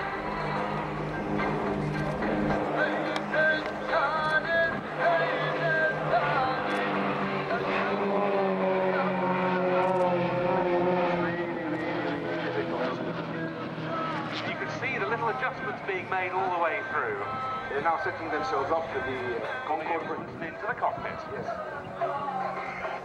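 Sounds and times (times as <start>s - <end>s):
music over loudspeakers: 0.0s - 7.9s, 14.3s - 23.0s
propeller planes droning overhead: 0.0s - 23.0s.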